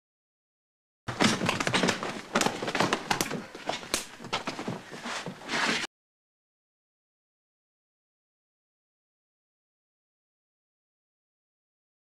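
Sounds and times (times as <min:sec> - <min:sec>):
knocks and bumps: 0:01.1 - 0:05.7
rustling of cloth and bedding: 0:01.1 - 0:05.9.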